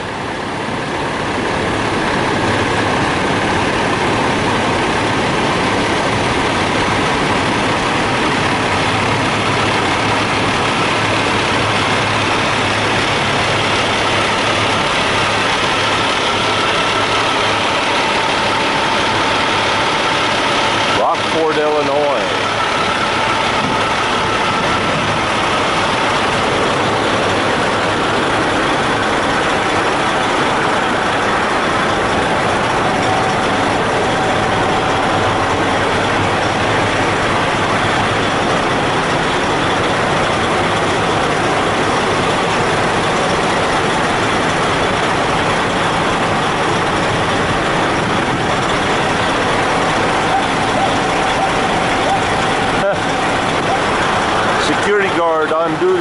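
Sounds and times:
diesel truck engines idling: 0.0 - 56.0
wavering sound: 8.6 - 42.0, 48.8 - 54.7.

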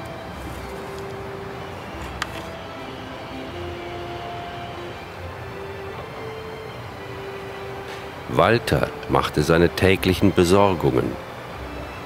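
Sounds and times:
soft slow film music: 0.0 - 12.0
steady ambient hum: 0.0 - 12.0.

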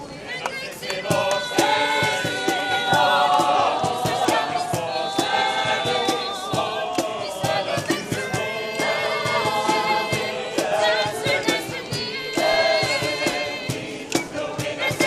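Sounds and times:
choir singing: 0.0 - 15.0
sharp regular beat: 1.0 - 15.0.

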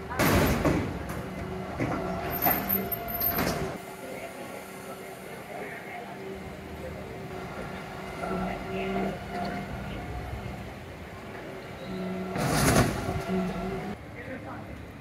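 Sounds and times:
lorry engine and hydraulics hum: 0.0 - 14.3.

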